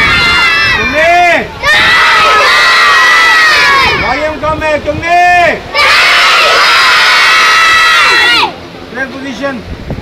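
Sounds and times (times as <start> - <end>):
children shouting together: 0.0 - 1.0, 1.6 - 4.1, 5.7 - 8.6.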